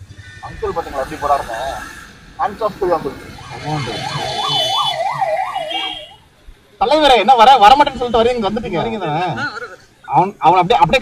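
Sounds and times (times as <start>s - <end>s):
siren wailing: 0.2s - 6.2s.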